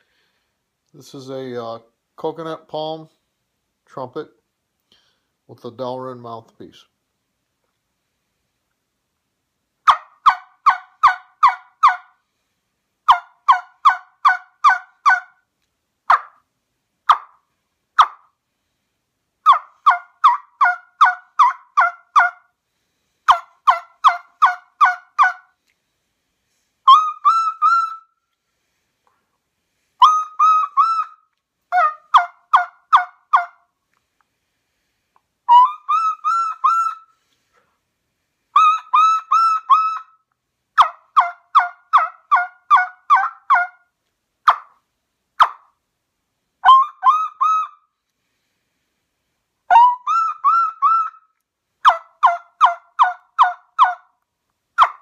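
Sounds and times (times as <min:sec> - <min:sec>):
turkey call yelps: 0:09.8 - 0:12.1, 0:13.1 - 0:15.4, 0:16.1 - 0:16.4, 0:17.1 - 0:17.4, 0:18.0 - 0:18.3, 0:19.4 - 0:22.5, 0:23.3 - 0:25.5, 0:26.9 - 0:28.1, 0:30.0 - 0:33.6, 0:35.5 - 0:37.1, 0:38.6 - 0:40.2, 0:40.8 - 0:43.8, 0:44.4 - 0:44.8, 0:45.4 - 0:45.7, 0:46.6 - 0:47.8, 0:49.7 - 0:54.1, 0:54.8 - 0:55.0.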